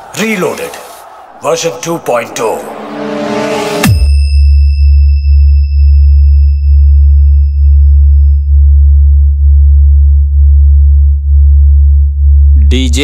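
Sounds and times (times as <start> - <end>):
deep sine test tone: 3.9 - 13.0.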